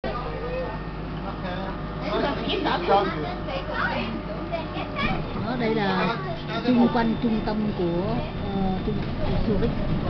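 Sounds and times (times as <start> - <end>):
low rumble of traffic: 0.0 - 10.0
faint voices of passers-by: 0.1 - 10.0.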